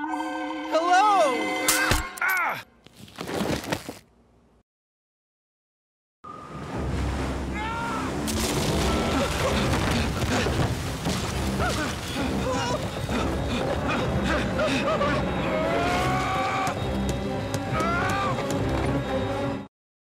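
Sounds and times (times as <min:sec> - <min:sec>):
dramatic soundtrack music: 0:06.4 - 0:19.7
thuds and crashes: 0:08.3 - 0:12.0.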